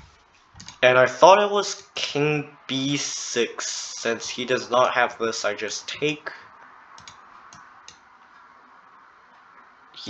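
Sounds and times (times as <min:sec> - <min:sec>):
low background hiss: 0:00.0 - 0:10.0
computer mouse clicks: 0:00.5 - 0:00.8, 0:07.0 - 0:08.5.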